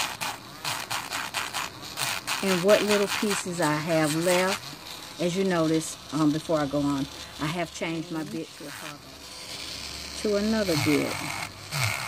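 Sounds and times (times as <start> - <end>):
drill bit rasping on nail: 0.0 - 12.0
nail drill motor tone: 0.0 - 12.0.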